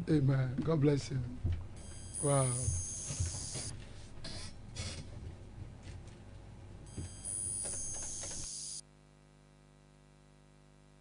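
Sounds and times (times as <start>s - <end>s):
high-pitched electronic tone: 1.8s - 3.7s, 6.9s - 8.8s.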